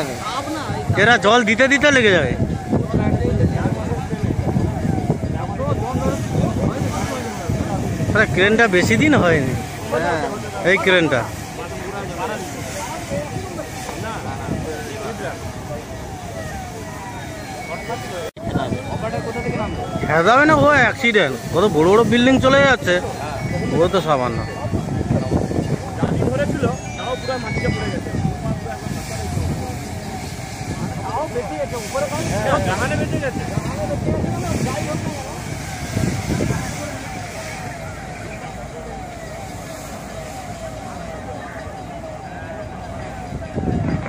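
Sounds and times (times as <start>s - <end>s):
fire rushing: 0.0s - 44.0s
people talking and calling out: 0.0s - 44.0s
siren falling tone: 0.0s - 44.0s
voices: 0.0s - 44.0s.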